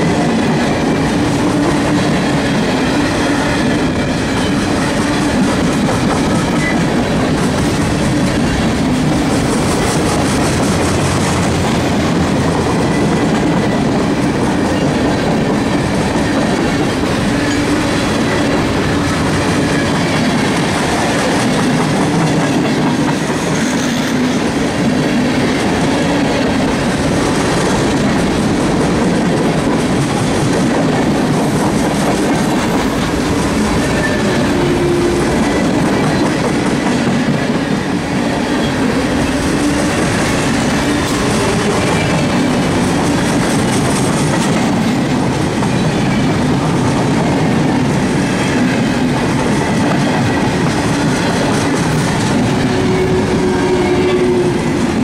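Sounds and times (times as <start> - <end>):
freight train wheels rumbling: 0.0 - 55.0.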